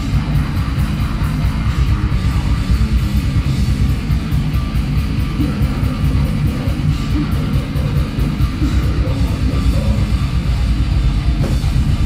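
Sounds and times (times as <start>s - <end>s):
distorted electric guitar: 0.0s - 12.0s
drum and cymbal hits: 0.0s - 12.0s.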